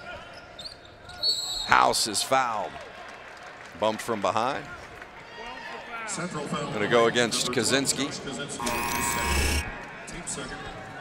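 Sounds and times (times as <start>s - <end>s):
arena buzzer: 8.6s - 9.9s.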